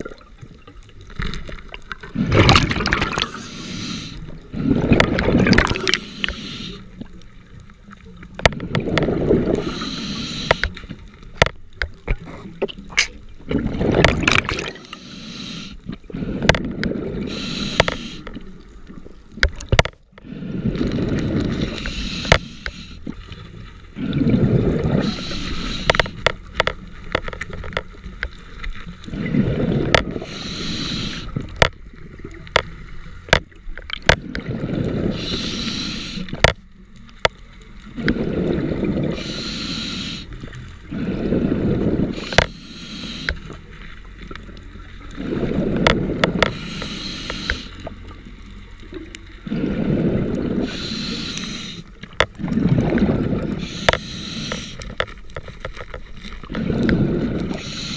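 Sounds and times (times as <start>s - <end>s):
exhaust bubbles: 2.0s - 3.4s, 4.6s - 6.0s, 13.5s - 14.9s, 52.4s - 54.0s
regulator hiss on inhale: 3.1s - 4.4s, 5.8s - 7.1s, 9.5s - 10.9s, 14.8s - 16.5s, 17.2s - 18.4s, 20.2s - 23.3s, 25.0s - 26.3s, 30.1s - 31.5s, 35.0s - 36.5s, 39.1s - 44.0s, 46.3s - 48.1s, 49.4s - 52.1s, 53.4s - 55.2s, 56.8s - 57.9s.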